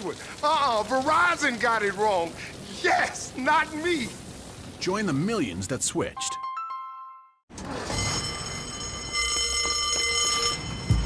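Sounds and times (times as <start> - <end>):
alarm ringing: 7.0 - 11.0.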